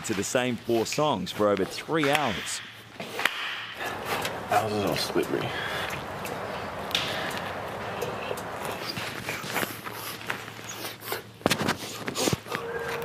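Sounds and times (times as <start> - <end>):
footsteps: 0.0 - 13.0
steady background hiss: 0.0 - 13.0.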